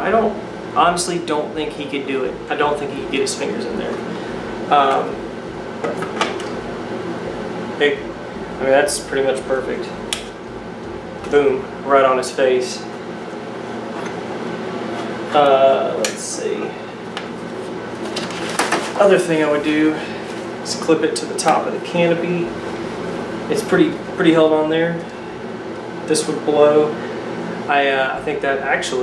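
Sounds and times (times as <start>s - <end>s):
fan whirring: 0.0s - 29.0s.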